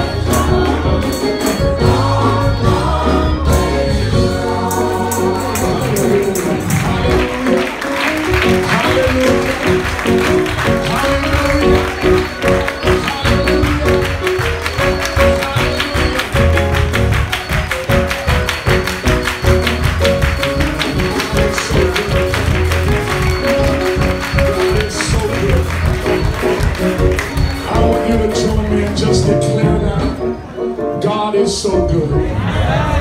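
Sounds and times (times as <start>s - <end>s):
fast percussive beat: 0.0s - 30.2s
bass: 0.0s - 30.4s, 31.0s - 33.0s
keyboard chords: 0.0s - 33.0s.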